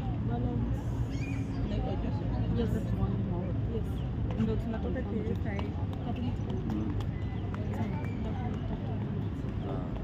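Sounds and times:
crowd chatter outdoors: 0.0 - 10.0.

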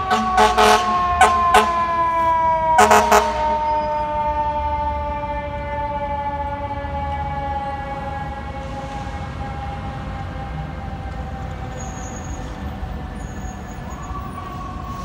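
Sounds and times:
air horn blast: 0.0 - 4.0
fire engine siren winding down: 0.0 - 15.0.

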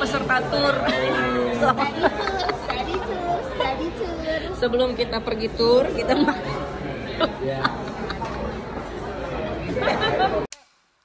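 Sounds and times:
restaurant chatter: 0.0 - 10.8.

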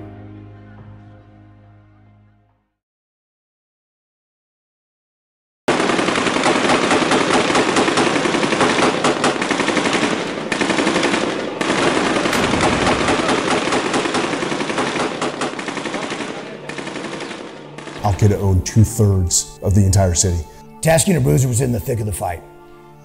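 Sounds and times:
rapid gunfire: 5.7 - 18.0.

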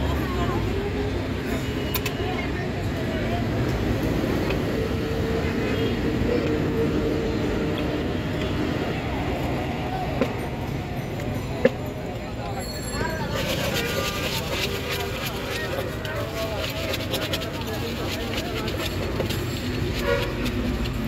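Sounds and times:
people talking: 0.0 - 21.0
traffic: 0.0 - 21.0.

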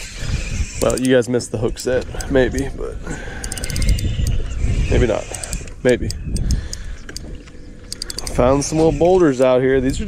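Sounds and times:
fishing reel cranking: 0.0 - 1.2, 3.4 - 7.3, 7.9 - 10.0
wind rumble on microphone: 0.0 - 10.0
rapid reel clicks: 0.8 - 1.2, 3.4 - 4.4, 5.2 - 7.3, 7.9 - 10.0.

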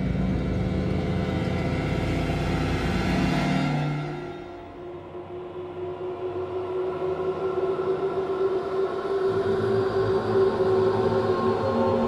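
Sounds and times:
eerie synthesized drone: 0.0 - 12.0.

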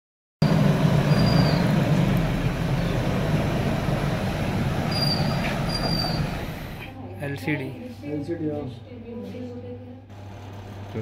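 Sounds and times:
vehicle engine rumble: 0.4 - 6.9.

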